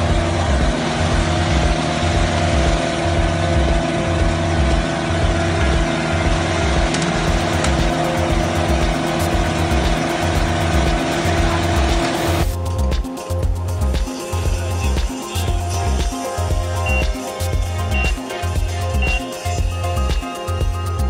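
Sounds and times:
road roller engine running: 0.0 - 21.0.

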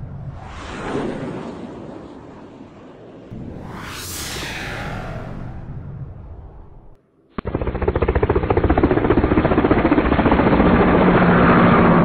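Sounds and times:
whoosh: 3.3 - 7.0.

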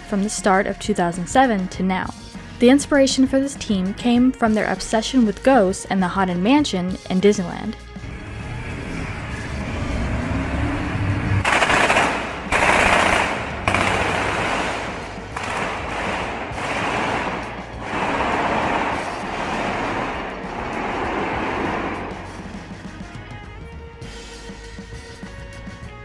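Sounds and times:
low rumble: 7.9 - 23.7
rapid gunfire bursts: 11.4 - 22.6.

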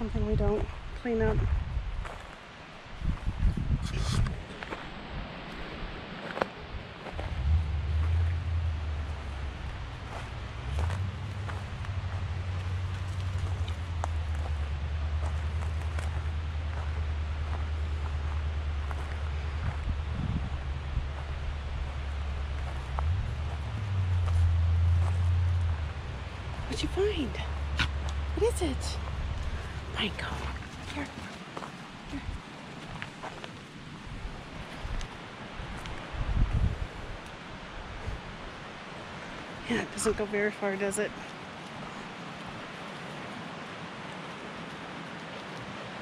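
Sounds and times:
steady low rumble: 0.0 - 42.7
footsteps on forest floor: 4.4 - 20.2, 21.0 - 36.0.

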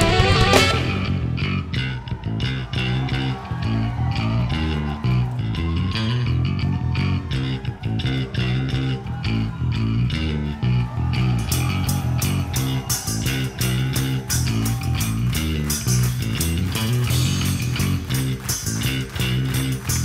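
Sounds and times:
electric bass guitar riff: 0.0 - 20.0
electric guitar: 0.0 - 20.0.

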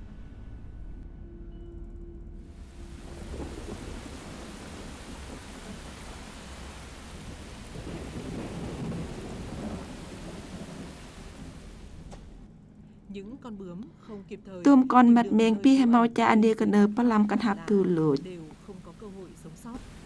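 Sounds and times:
thunder rumbling: 2.5 - 13.2
rain falling: 2.6 - 12.5, 16.5 - 20.0.

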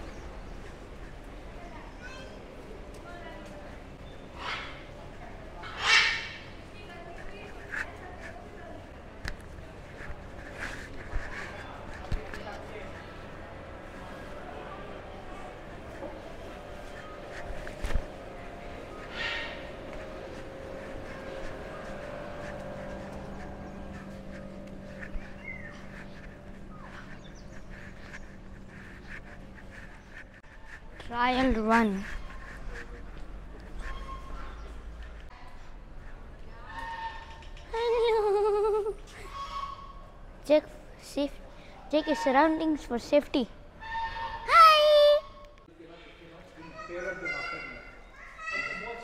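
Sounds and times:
murmur of voices: 0.0 - 30.8
steady low hum: 0.0 - 36.7
bird squawks: 5.6 - 6.5, 18.9 - 19.8.

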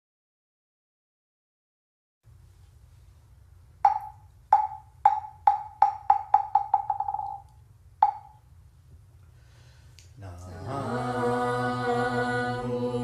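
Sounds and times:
hollow wooden knocks: 3.9 - 8.4.

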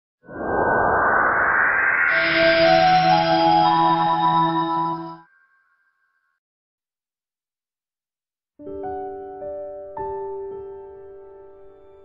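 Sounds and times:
rising whoosh: 0.2 - 4.2
sustained chord: 2.1 - 5.2.

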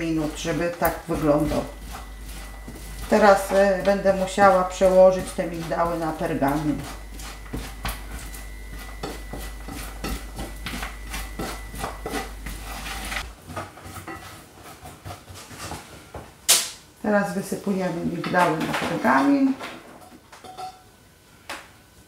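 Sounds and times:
steady low hum: 0.0 - 13.4.

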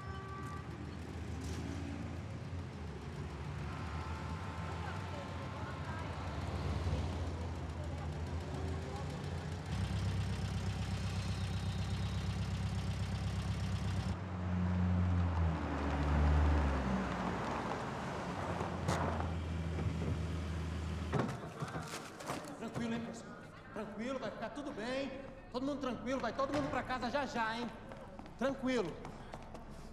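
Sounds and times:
car engine idling: 0.1 - 14.2.

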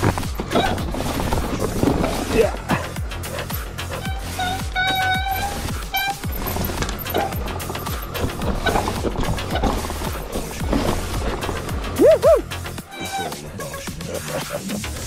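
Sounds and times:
bike tyres rolling over dirt: 0.0 - 13.4
background music: 0.0 - 15.0
bike rattling: 0.0 - 15.0
high squeal: 3.9 - 10.3, 11.9 - 13.8.

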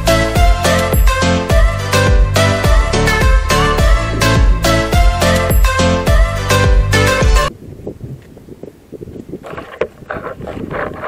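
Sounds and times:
wind buffeting microphone: 3.8 - 5.0, 7.5 - 11.0.

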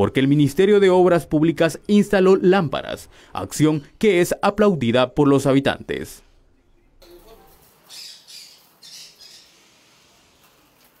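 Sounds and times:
bird squawking: 7.9 - 9.6.

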